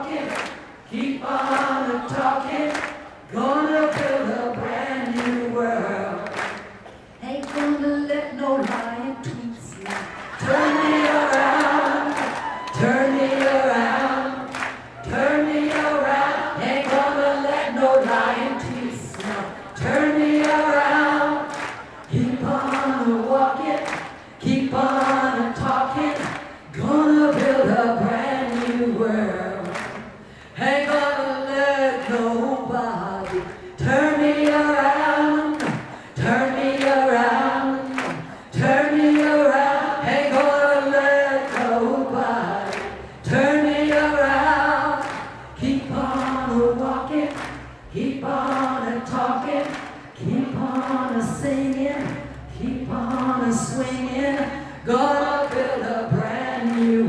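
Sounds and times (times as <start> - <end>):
group singing: 0.0 - 6.8, 9.7 - 57.0
woman leading singing: 7.2 - 21.5
short breath: 30.2 - 30.6, 35.9 - 36.2.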